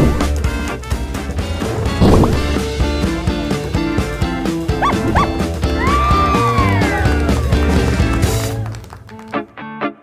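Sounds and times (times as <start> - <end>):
upbeat jingle music: 4.7 - 5.6
cartoon squeaks: 4.8 - 5.4.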